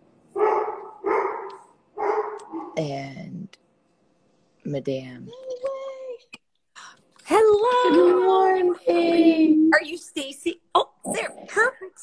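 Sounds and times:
dog barking: 0.4 - 2.8.

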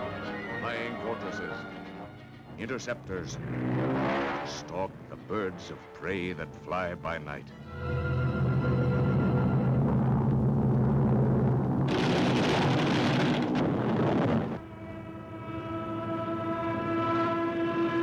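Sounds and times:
low orchestral notes: 0.0 - 10.3, 14.5 - 18.0
long horn-like note: 14.2 - 18.0.

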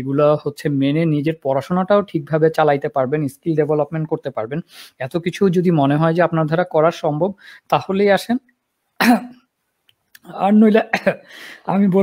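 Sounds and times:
man speaking: 0.0 - 8.4, 10.2 - 12.0
man clearing throat: 9.0 - 9.4.

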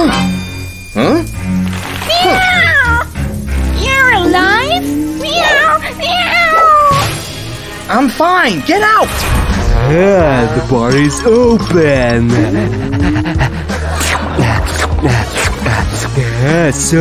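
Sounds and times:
background music: 0.0 - 17.0
cat meowing: 2.0 - 3.1, 5.3 - 7.0.

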